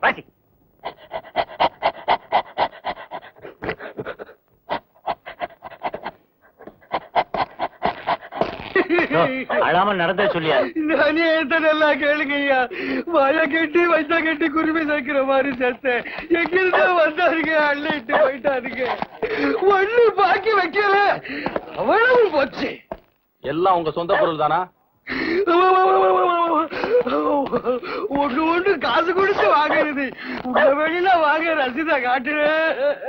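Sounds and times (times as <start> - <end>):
dog panting: 0.8 - 8.5, 9.5 - 10.8, 16.1 - 19.7, 29.2 - 30.8
man wailing: 8.8 - 11.7, 25.4 - 33.0.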